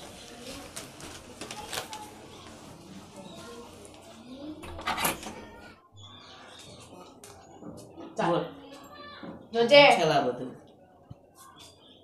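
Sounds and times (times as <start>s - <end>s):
door barrel bolt sliding: 4.6s - 5.4s.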